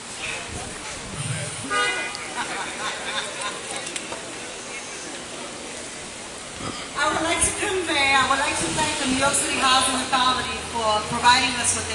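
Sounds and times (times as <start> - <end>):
street traffic noise: 0.0 - 11.9
vehicle horn toot: 1.6 - 2.3.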